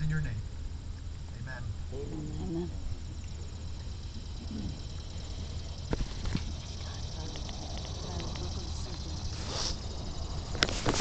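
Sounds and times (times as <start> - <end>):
steady low rumble: 0.0 - 11.0
faint ticks: 5.9 - 9.1.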